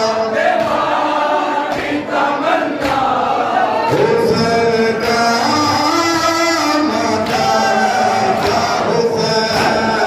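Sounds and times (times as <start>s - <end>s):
men chanting in unison: 0.0s - 10.0s.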